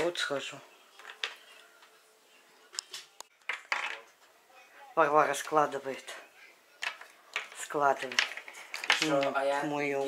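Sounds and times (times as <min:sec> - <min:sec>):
plastic toys clicking on tabletop: 0:06.8 - 0:09.4.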